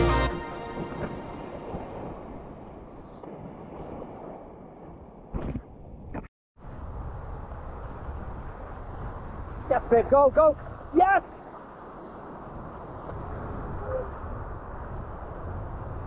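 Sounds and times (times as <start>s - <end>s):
surf breaking and washing: 0.0s - 5.6s, 6.6s - 16.0s
wind buffeting microphone: 0.6s - 16.0s.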